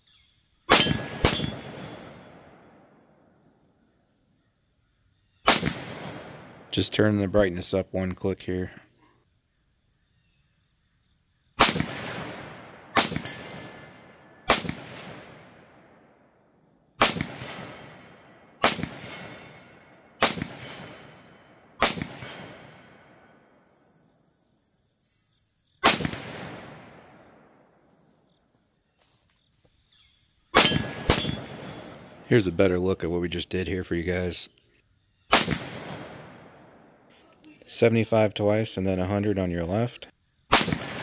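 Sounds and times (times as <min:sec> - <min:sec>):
metallic ring of steel targets: 0:00.7 - 0:02.5, 0:11.8 - 0:14.1, 0:20.6 - 0:23.2, 0:30.6 - 0:32.2, 0:40.6 - 0:41.0
rifle shots: 0:00.7 - 0:03.1, 0:05.4 - 0:06.8, 0:11.6 - 0:16.1, 0:17.0 - 0:23.5, 0:25.8 - 0:27.7, 0:30.6 - 0:32.4, 0:35.3 - 0:37.0, 0:40.5 - 0:41.0.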